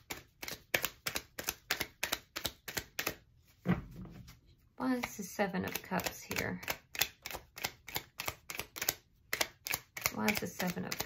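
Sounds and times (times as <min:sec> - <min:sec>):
cards being shuffled: 0:00.0 - 0:03.7, 0:05.0 - 0:11.0.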